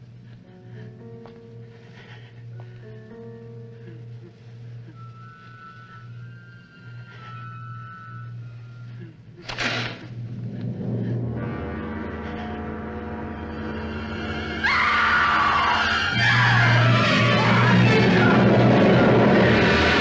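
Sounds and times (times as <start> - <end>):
low sustained drone: 3.4 - 20.0
held orchestral chords: 10.1 - 14.6.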